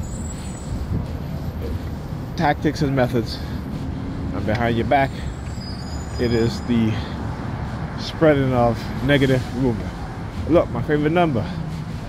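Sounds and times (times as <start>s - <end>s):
city traffic rumble: 0.0s - 12.0s.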